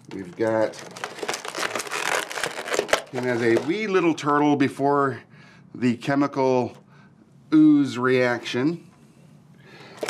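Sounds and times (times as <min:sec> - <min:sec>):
plastic packaging crinkling: 0:00.0 - 0:04.0.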